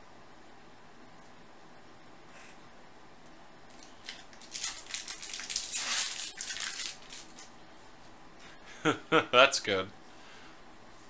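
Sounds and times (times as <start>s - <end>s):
foil wrapper crinkling and tearing: 3.7s - 7.5s.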